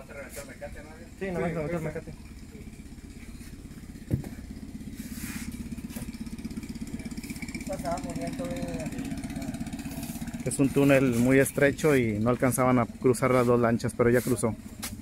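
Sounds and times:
outboard motor rumble: 0.6 - 15.0.

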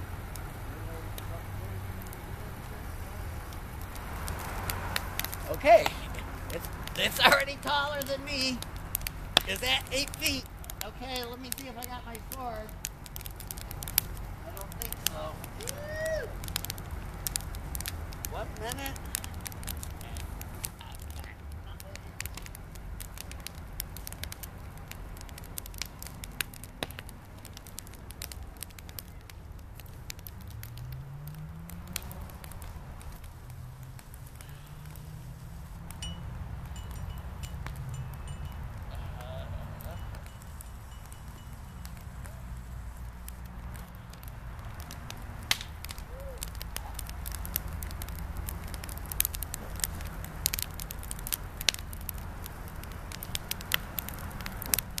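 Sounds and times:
bonfire rumbling: 0.0 - 55.0
fire crackling and popping: 0.0 - 55.0.

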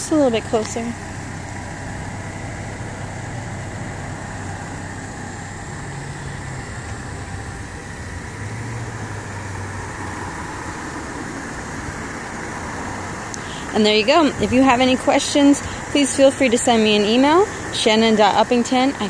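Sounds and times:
low motor vehicle hum: 0.0 - 19.0.

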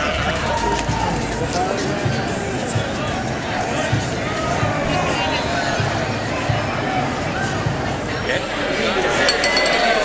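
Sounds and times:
crowd chatter in a bar: 0.0 - 10.0
glasses clinking: 9.0 - 10.0.

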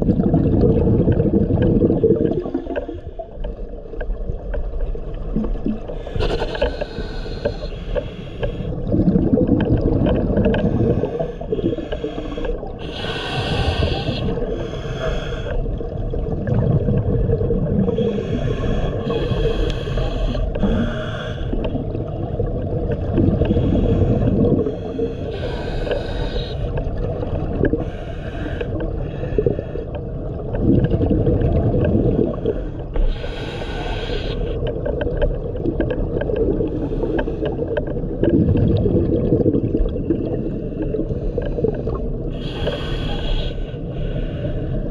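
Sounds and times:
burble of exhaled bubbles: 0.0 - 7.7, 8.5 - 43.2
regulator hiss on inhale: 6.0 - 8.7, 10.6 - 15.6, 17.9 - 21.6, 23.5 - 26.8, 27.8 - 29.8, 32.4 - 34.6, 40.5 - 44.8.

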